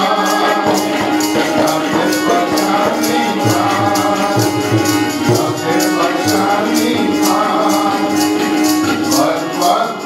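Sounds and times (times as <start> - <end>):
harmonium: 0.0 - 10.0
men singing together: 0.0 - 10.0
percussion beat: 0.0 - 10.0.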